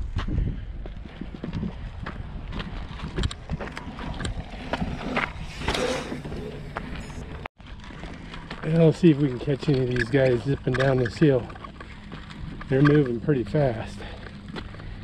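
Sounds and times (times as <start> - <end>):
wind rumble on microphone: 0.0 - 8.5
footsteps on dirt trail: 0.0 - 15.0.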